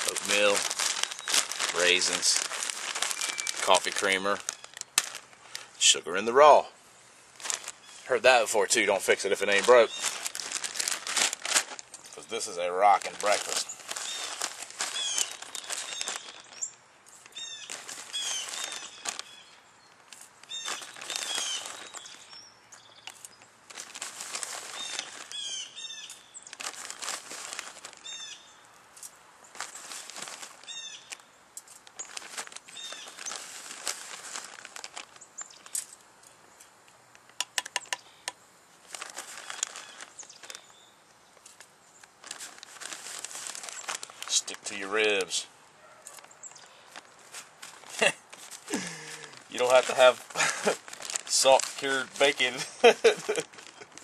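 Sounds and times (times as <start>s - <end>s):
plastic bag crinkling: 0.0s - 6.6s, 7.3s - 36.3s, 38.8s - 40.8s, 41.4s - 54.0s.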